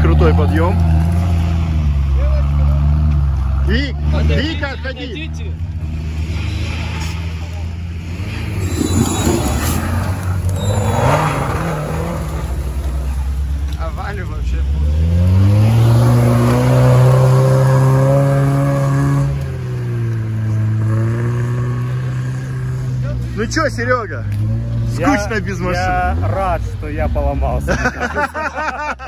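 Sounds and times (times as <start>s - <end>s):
engine revving hard: 8.0s - 12.9s, 14.6s - 19.5s.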